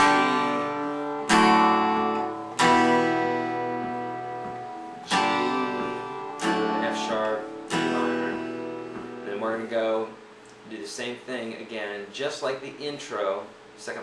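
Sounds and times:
acoustic guitar strumming chords: 0.0 - 10.4.

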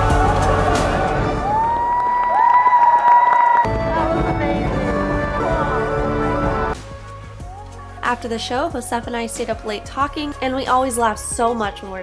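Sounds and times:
audience cheering and applauding: 0.0 - 4.0
long high whoops: 1.3 - 3.7.

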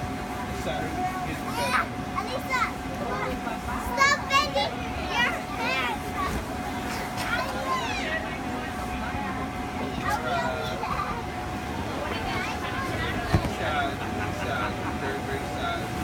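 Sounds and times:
air blower hum: 13.0 - 14.1.

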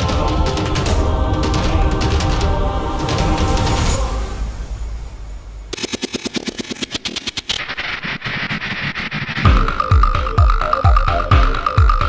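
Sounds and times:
rapid clicks: 5.7 - 12.0
heavy kick drum beat: 9.4 - 12.0.

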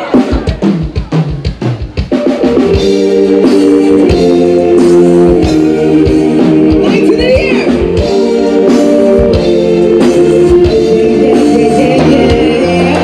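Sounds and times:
drum fill: 0.0 - 13.0
live band playing: 0.0 - 13.0.

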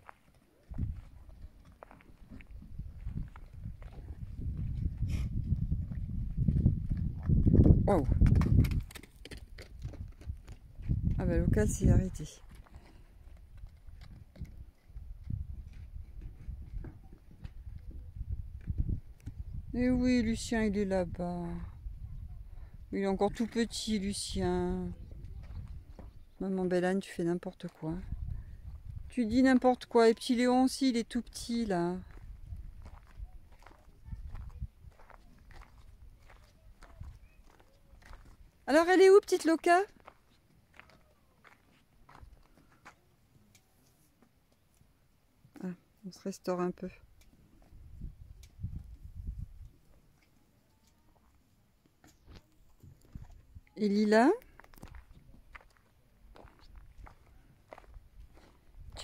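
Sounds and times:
footsteps on dry dirt: 0.0 - 7.8, 24.7 - 26.4, 31.8 - 43.0, 52.2 - 59.0
hooves knocking on hard dirt: 0.1 - 11.6, 12.4 - 18.8
low rumbling microphone noise: 2.4 - 8.9.

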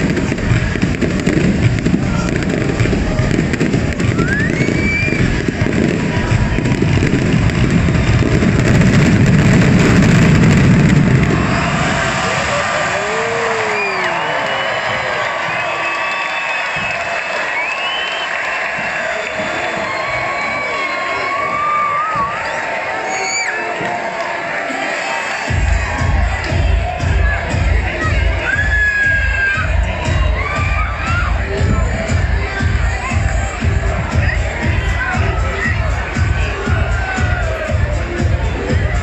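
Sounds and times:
fireworks banging: 0.0 - 13.8
crowd cheering and whooping: 0.0 - 39.0.

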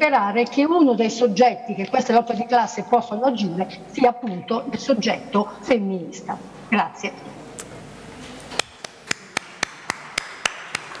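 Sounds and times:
hand clapping: 8.5 - 11.0.

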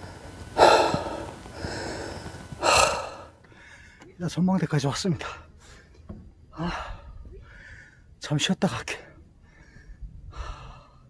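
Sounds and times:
man breathing hard: 0.0 - 4.2, 5.2 - 8.2, 9.2 - 11.0.

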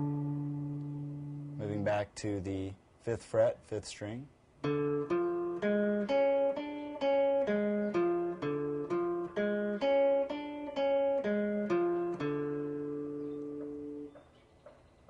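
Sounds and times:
acoustic guitar arpeggio: 0.0 - 2.0, 4.6 - 14.1.

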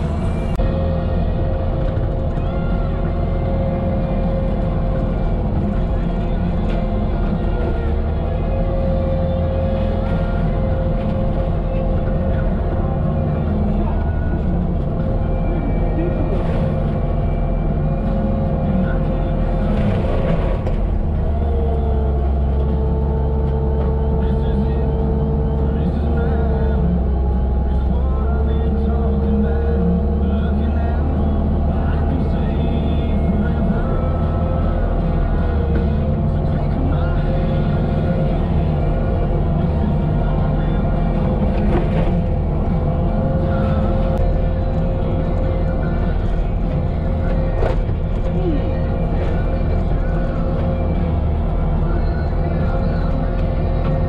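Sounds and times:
engine and hydraulic drone: 0.0 - 54.0
music with vocals: 0.0 - 54.0.

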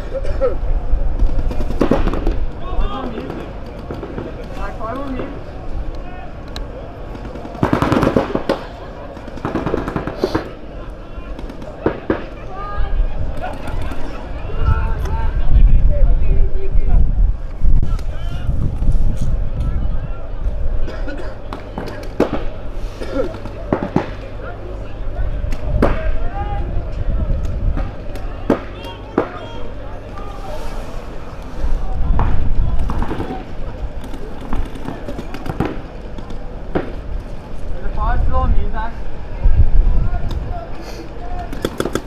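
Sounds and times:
players calling out: 1.5 - 15.5, 19.7 - 38.3
paintball markers firing: 7.1 - 10.6, 23.3 - 24.3, 32.2 - 37.1, 41.4 - 42.0.

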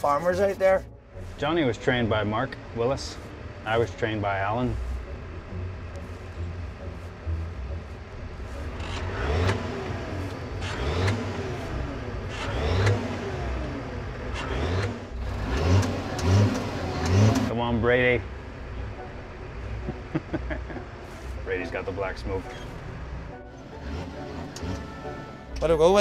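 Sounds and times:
tractor diesel engine revving: 0.0 - 26.0.

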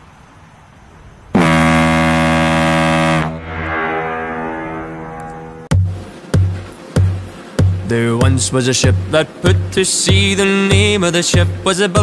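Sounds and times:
ship's whistle blast: 1.4 - 5.7.

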